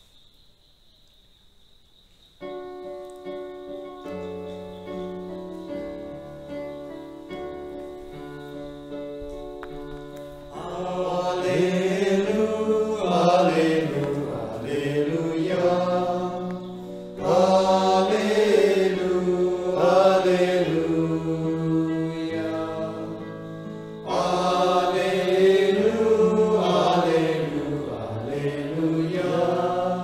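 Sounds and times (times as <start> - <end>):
person singing a hymn: 10.5 - 30.0.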